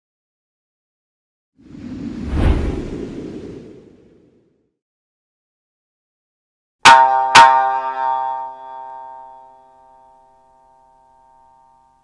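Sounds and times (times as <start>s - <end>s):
whoosh sound effect: 1.6s - 4.6s.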